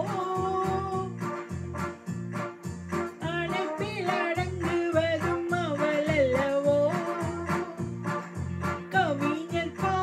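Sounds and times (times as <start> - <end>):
woman singing: 0.0 - 1.1, 3.2 - 7.9, 8.9 - 10.0
electronic keyboard with beat: 0.0 - 10.0.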